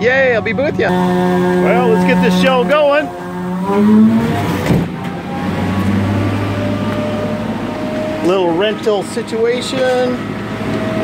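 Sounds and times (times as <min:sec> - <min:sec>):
machine engine humming: 0:00.0 - 0:11.0.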